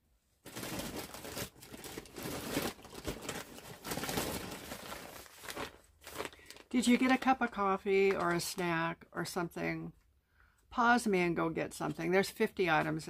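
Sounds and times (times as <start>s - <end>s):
plastic packaging crinkling: 0.4s - 8.6s.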